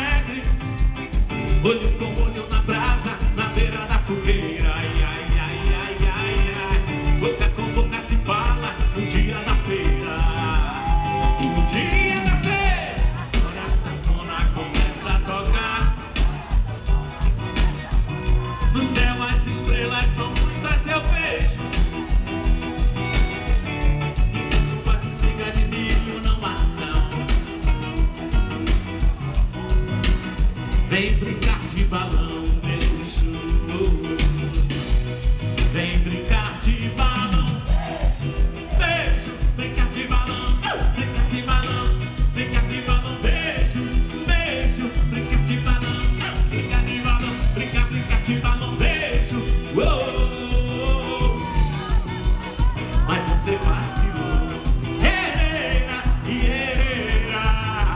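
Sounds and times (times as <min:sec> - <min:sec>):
bass guitar: 0:00.0 - 0:57.9
driving kick drum beat: 0:00.0 - 0:57.9
electric guitar: 0:00.0 - 0:57.9
live rock band through pa: 0:00.0 - 0:57.9.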